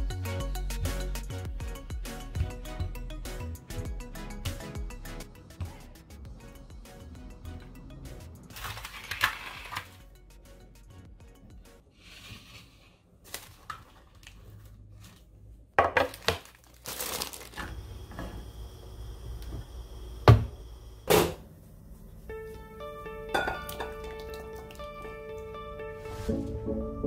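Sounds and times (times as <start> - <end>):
light background music: 0.0 - 11.9, 22.2 - 27.0.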